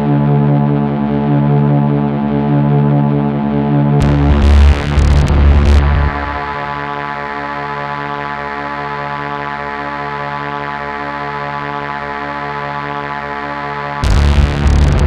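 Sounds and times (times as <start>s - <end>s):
droning held tones: 4.0s - 7.0s, 14.0s - 15.0s.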